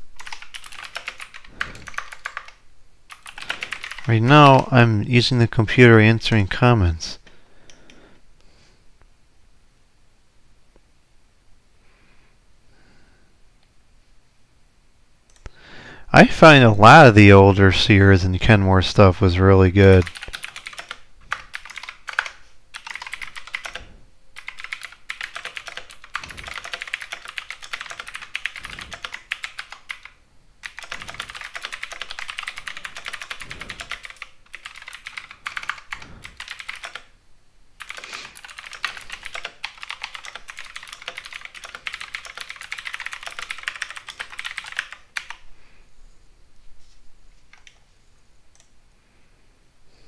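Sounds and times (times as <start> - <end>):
typing on computer keyboard: 0.2 - 4.7, 19.9 - 37.1, 37.8 - 45.4.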